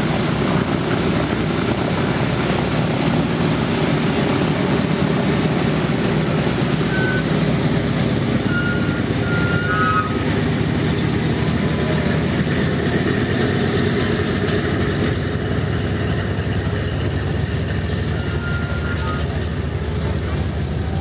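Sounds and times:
aircraft radial engines rumbling: 0:00.0 - 0:21.0.

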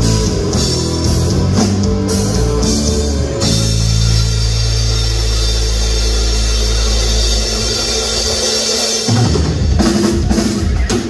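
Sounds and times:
rock band holding a chord: 0:00.0 - 0:11.0.

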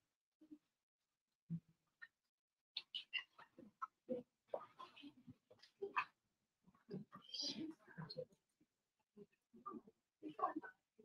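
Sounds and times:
faint scattered voices: 0:02.8 - 0:08.5, 0:09.2 - 0:11.0.

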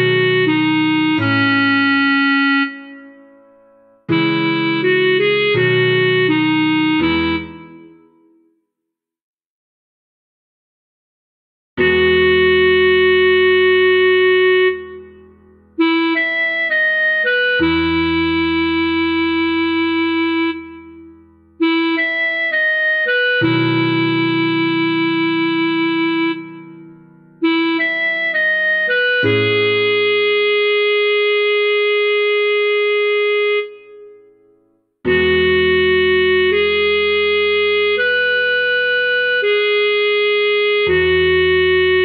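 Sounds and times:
clarinet long note: 0:00.0 - 0:03.3, 0:04.1 - 0:08.0, 0:11.8 - 0:34.2, 0:35.1 - 0:42.0.

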